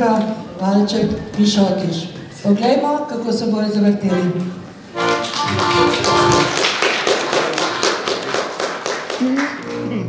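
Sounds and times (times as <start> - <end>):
accordion folk dance music: 4.1 - 6.7.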